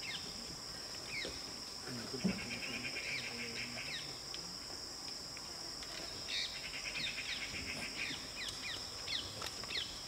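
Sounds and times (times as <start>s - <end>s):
insects shrilling: 0.0s - 10.0s.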